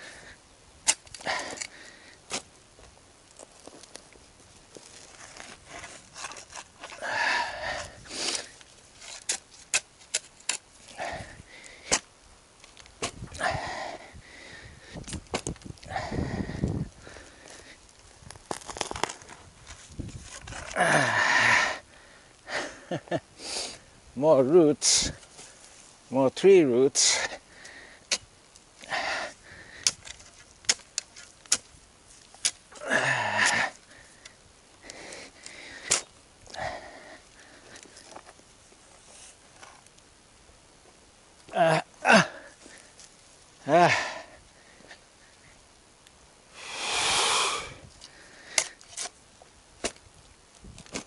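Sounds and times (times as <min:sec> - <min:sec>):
shovel scraping in soil: 0:04.8 - 0:07.0, 0:07.7 - 0:11.1, 0:18.5 - 0:20.8, 0:29.8 - 0:32.8, 0:48.5 - 0:49.2.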